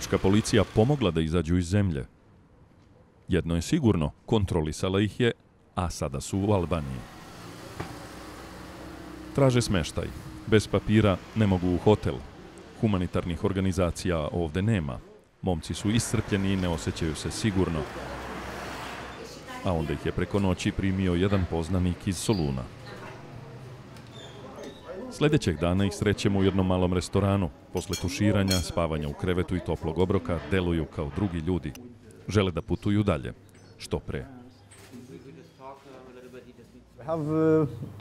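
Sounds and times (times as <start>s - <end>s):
traffic noise: 6.3s - 14.2s, 15.7s - 26.8s.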